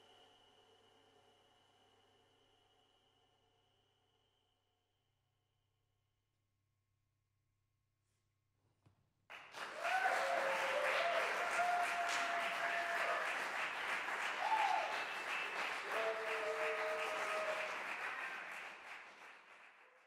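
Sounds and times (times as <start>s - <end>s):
audience applauding: 9.3s - 20.0s
audience cheering: 9.6s - 19.3s.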